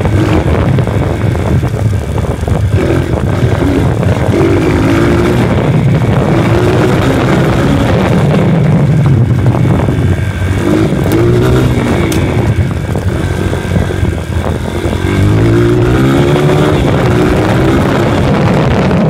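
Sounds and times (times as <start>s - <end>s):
dirt bike engine revving: 0.0s - 19.0s
sharp clicks: 11.9s - 12.6s.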